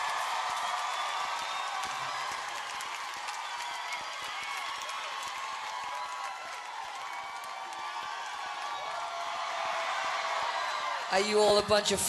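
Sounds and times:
audience clapping: 0.0s - 11.7s
audience shouts: 0.0s - 12.0s.

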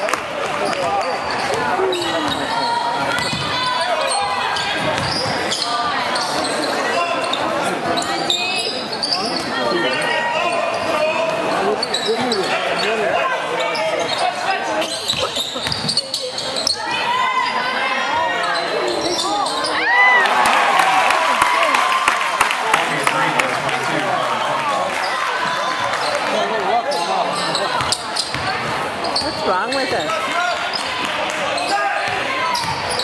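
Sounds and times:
spectators talking: 0.0s - 33.0s.

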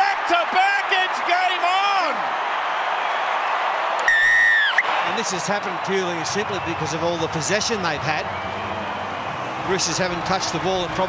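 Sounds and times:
stadium crowd cheering: 0.0s - 11.0s
referee's whistle blast: 4.0s - 4.9s.

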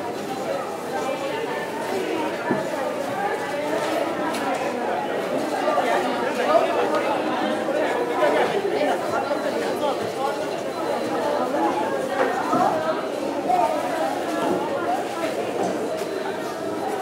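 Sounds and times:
murmur of conversation: 0.0s - 17.0s
shoppers' voices chattering: 0.0s - 17.0s.

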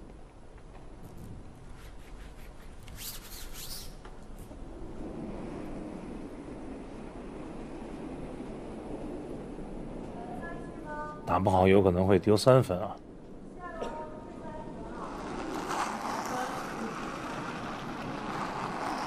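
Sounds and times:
low steady rumble: 4.2s - 19.0s.

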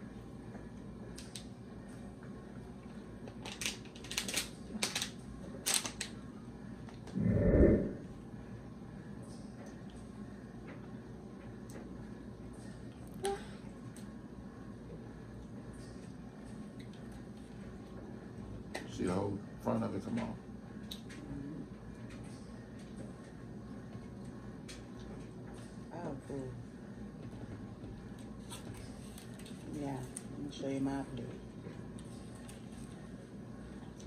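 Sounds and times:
short low sound: 7.1s - 8.1s.

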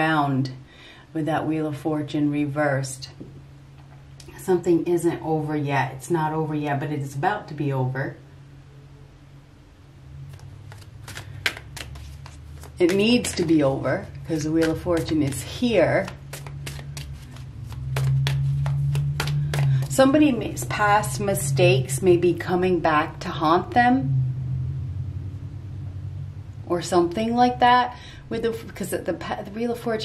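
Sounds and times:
low steady rumble: 0.0s - 30.0s
cards being shuffled: 10.3s - 20.0s.

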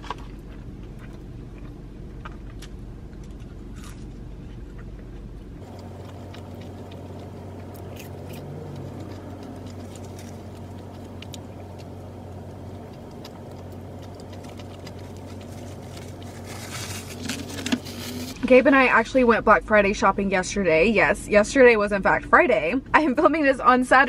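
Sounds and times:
chewing and mouth clicks: 0.0s - 17.0s
low car cabin hum: 0.0s - 23.7s.

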